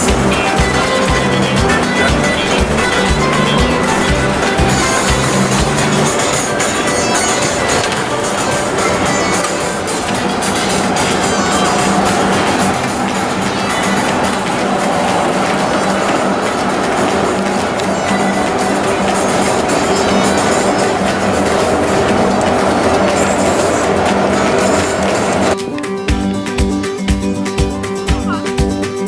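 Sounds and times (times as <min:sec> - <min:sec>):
low drone note: 0:00.0 - 0:25.7
busy instrumental melody: 0:00.0 - 0:29.0.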